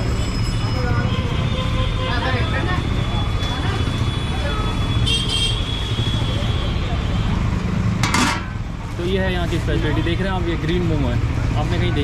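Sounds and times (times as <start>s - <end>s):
low rumble of street noise: 0.0s - 12.0s.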